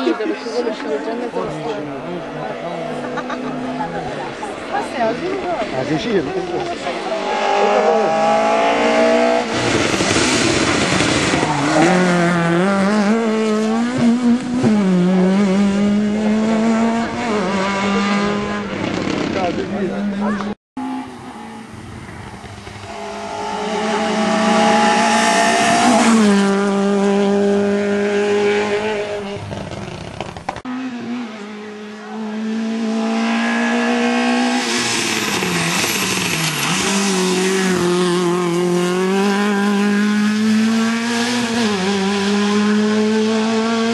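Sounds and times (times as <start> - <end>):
rally car engines revving: 0.0 - 43.9.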